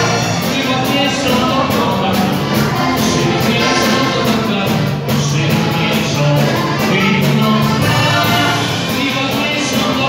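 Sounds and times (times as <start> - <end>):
accordion: 0.0 - 10.0
bass guitar: 0.0 - 10.0
drums playing steady beat: 0.0 - 10.0
person singing: 0.0 - 10.0.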